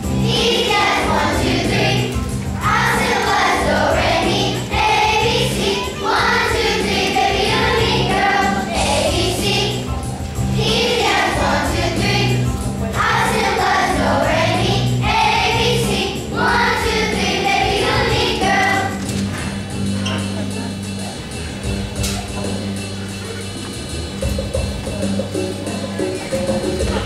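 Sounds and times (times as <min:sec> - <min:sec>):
children's choir singing: 0:00.0 - 0:19.6
instrumental accompaniment: 0:00.0 - 0:27.0.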